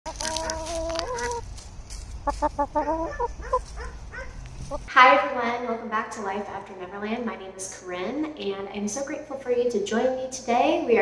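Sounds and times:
rooster crowing: 0.1 - 1.4, 2.5 - 4.4.

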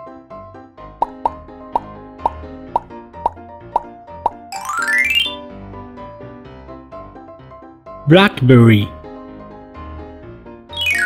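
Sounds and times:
light children's music: 0.0 - 11.0
bright cartoon sound effects: 4.5 - 5.4, 10.8 - 11.0.

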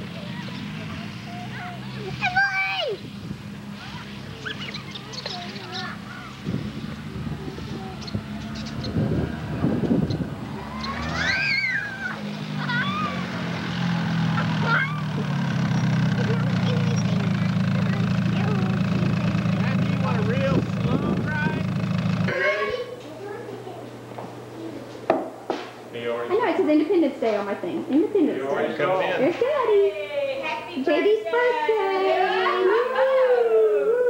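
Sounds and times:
children squealing and calling: 0.0 - 3.1, 3.7 - 18.8, 30.4 - 34.0
atv engine running: 0.0 - 22.8.

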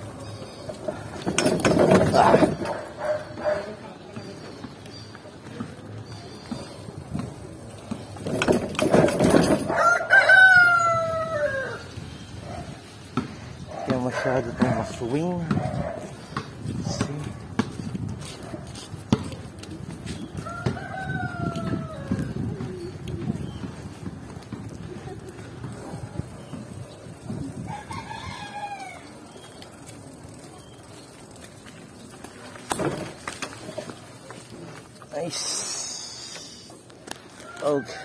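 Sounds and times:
rooster crowing: 9.7 - 11.9, 20.4 - 22.2, 27.7 - 29.1, 37.4 - 38.0.

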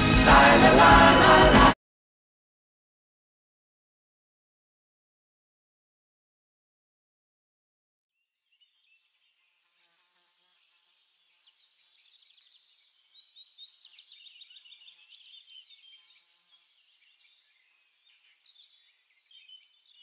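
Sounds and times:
small birds chirping: 10.3 - 20.0.

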